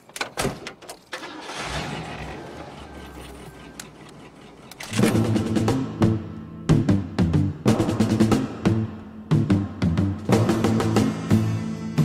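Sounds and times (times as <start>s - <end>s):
car engine starting and idling: 1.0s - 11.1s.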